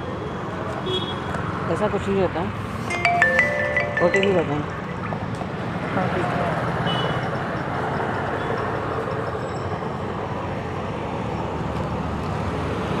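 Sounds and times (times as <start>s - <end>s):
traffic engines rumbling: 0.0s - 13.0s.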